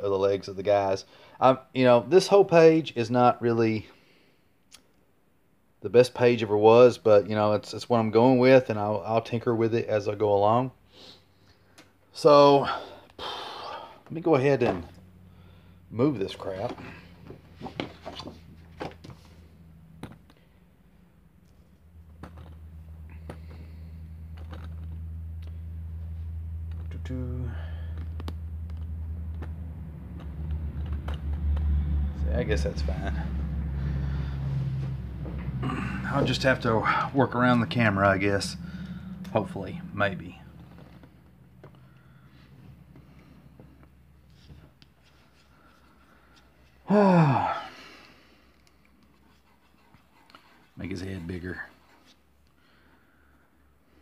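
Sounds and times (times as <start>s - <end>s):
low steady hum: 0.0s - 54.0s
low steady rumble: 5.3s - 54.0s
pencil moving over paper: 48.6s - 52.5s.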